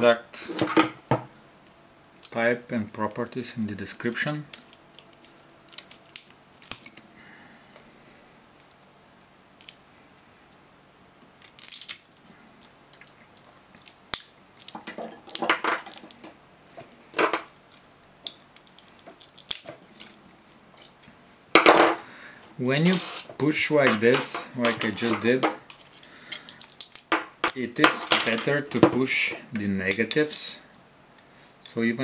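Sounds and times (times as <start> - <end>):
battery cells pried apart: 3.9 - 7.1, 9.5 - 16.4, 18.6 - 20.2, 25.7 - 27.1.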